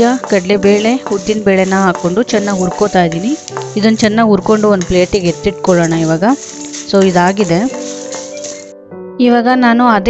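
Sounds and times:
food sizzling in hot oil: 0:00.0 - 0:08.7
metal spatula stirring: 0:00.0 - 0:08.7.

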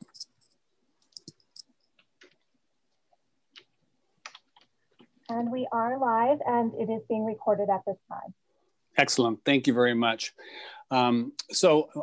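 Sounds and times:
computer keys clicking: 0:00.0 - 0:02.6, 0:03.5 - 0:05.5.

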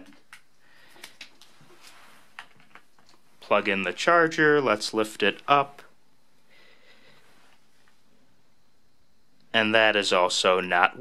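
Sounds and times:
faint clicks of cable handling: 0:00.0 - 0:03.3.

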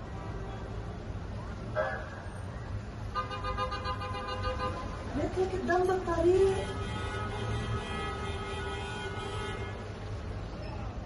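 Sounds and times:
traffic rumble: 0:00.0 - 0:11.0.

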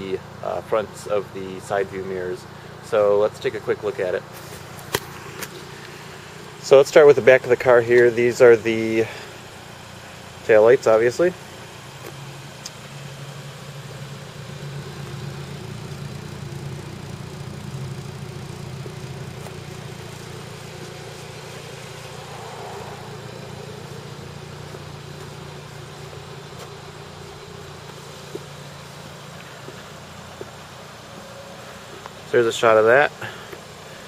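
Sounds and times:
car engine idling: 0:00.0 - 0:34.0.

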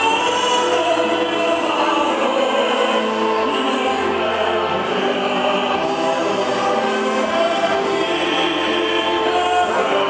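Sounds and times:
choir-like singing with music: 0:00.0 - 0:10.0.

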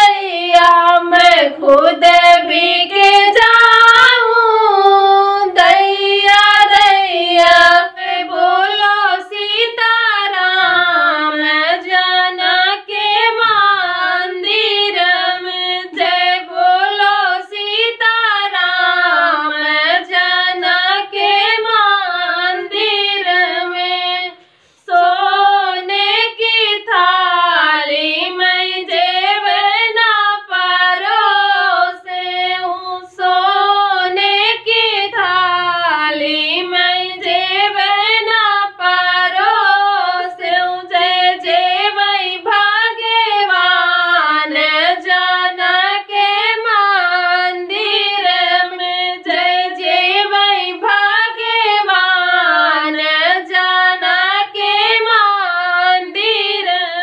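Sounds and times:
women singing folk song: 0:00.0 - 0:57.0.

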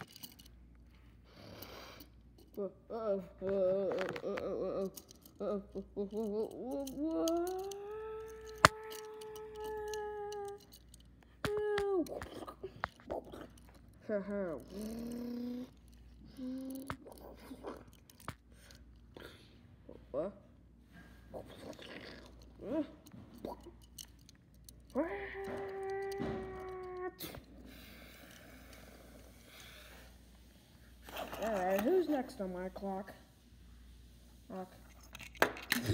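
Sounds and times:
light clicks and handling rustle: 0:00.0 - 0:01.3, 0:03.4 - 0:19.6, 0:20.8 - 0:33.2, 0:34.6 - 0:35.9
person humming held note: 0:25.0 - 0:27.4.

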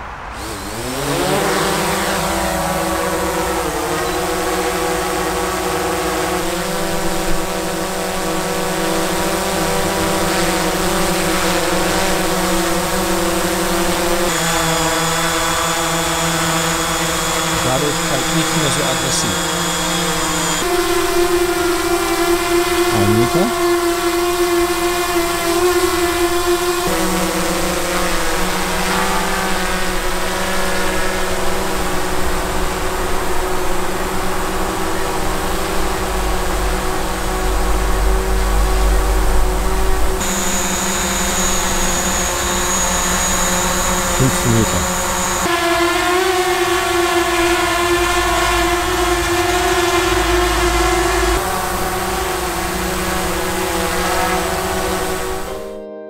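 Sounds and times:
drone propeller whine: 0:00.0 - 0:55.7
high steady whistle: 0:40.2 - 0:45.5.

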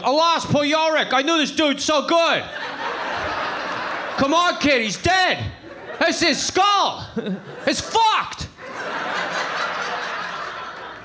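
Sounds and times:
audience laughing: 0:02.4 - 0:05.0, 0:05.6 - 0:11.0.

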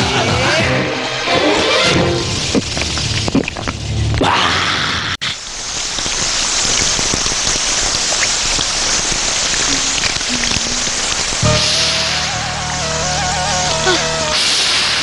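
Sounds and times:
shower spray running: 0:05.5 - 0:15.0
low music: 0:11.4 - 0:14.4.

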